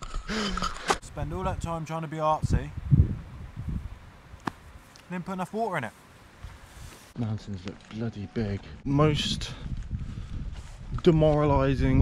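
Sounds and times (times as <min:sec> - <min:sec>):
person laughing: 0:00.1 - 0:01.0
rustling in long grass: 0:03.5 - 0:07.2.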